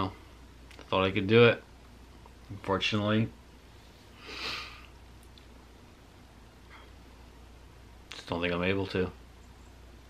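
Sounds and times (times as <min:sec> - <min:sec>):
man sniffing: 0:04.2 - 0:05.0.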